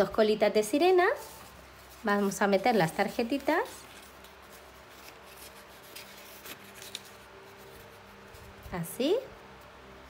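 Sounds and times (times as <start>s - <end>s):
paper rustling: 1.0s - 8.7s.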